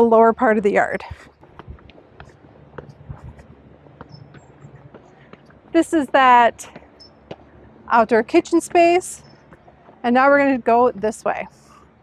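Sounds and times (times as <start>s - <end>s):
footsteps on stone steps: 0.8s - 7.5s, 8.4s - 10.7s.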